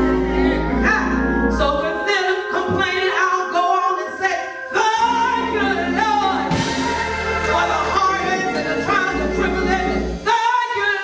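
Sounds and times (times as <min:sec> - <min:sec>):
low instrumental accompaniment: 0:00.0 - 0:11.0
gospel singing through pa: 0:01.7 - 0:11.0.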